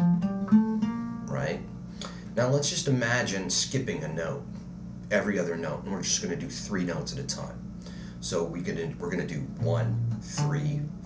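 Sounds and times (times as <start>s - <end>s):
acoustic guitar picking a scale: 0.0s - 3.2s, 8.9s - 11.0s.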